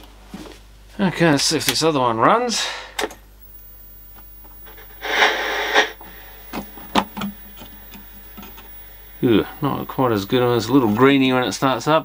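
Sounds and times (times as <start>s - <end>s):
static hiss: 2.5s - 12.0s.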